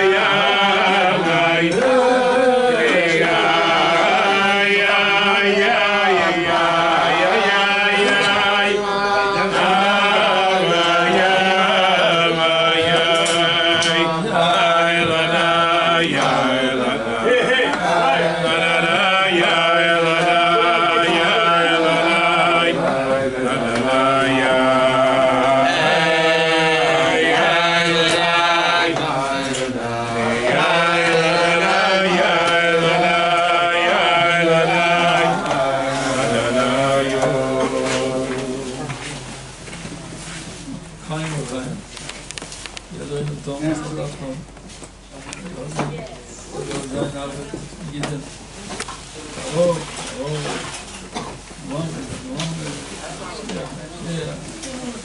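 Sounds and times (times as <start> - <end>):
men singing together: 0.0 - 39.6.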